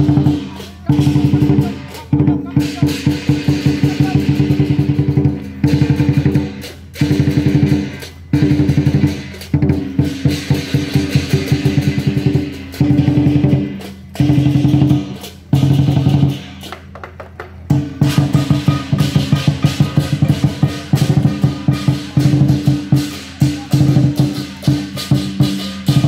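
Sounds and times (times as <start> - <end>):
cymbals clashing: 0.0 - 26.0
drum beaten in fast rolls: 0.0 - 26.0.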